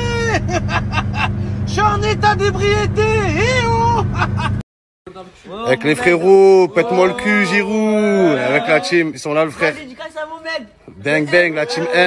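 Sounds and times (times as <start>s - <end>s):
car engine droning: 0.0s - 4.6s
man wailing: 0.0s - 4.6s, 6.7s - 9.0s.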